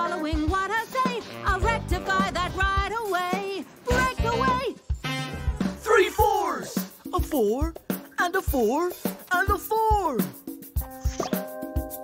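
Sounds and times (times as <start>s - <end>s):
upbeat cartoon music: 0.0s - 12.0s
cartoon plop sound effect: 11.0s - 11.4s.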